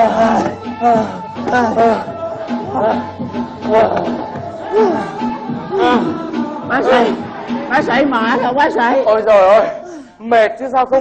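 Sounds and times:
men calling out: 0.0s - 10.0s
background music: 0.0s - 11.0s.

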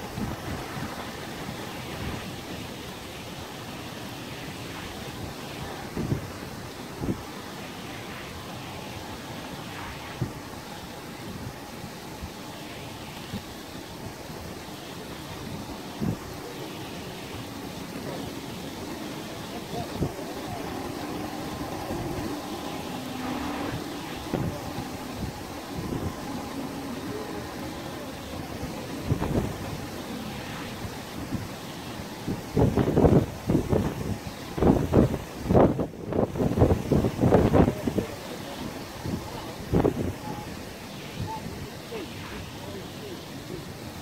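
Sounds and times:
rushing water: 0.0s - 44.0s
wind on microphone: 0.0s - 44.0s.

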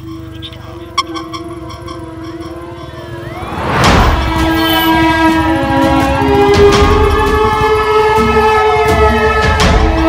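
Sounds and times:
traffic rumble: 0.0s - 9.3s
vehicle rushing past: 2.6s - 6.5s
loud horn chord: 3.8s - 10.0s.

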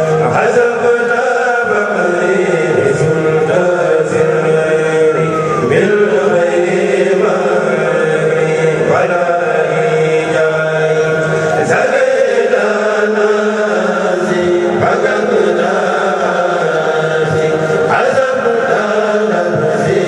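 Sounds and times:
men chanting in unison: 0.0s - 20.0s.

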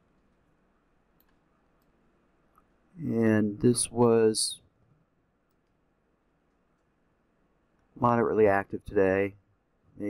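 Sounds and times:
computer mouse clicks: 1.1s - 2.7s, 5.4s - 5.8s.

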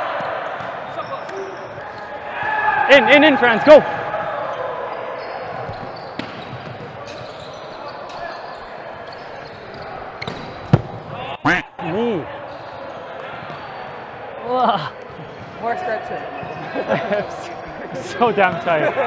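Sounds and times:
players shouting: 0.0s - 6.2s.

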